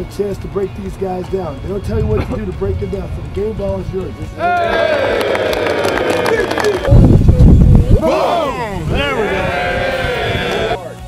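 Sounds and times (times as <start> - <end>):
loud low rumble: 1.6 - 5.0
group of men shouting together: 4.4 - 6.8, 8.0 - 10.8.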